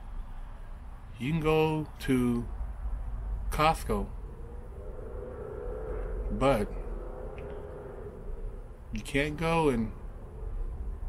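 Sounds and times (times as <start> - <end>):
faint steady hum: 0.0 - 11.0
low background rumble: 0.0 - 11.0.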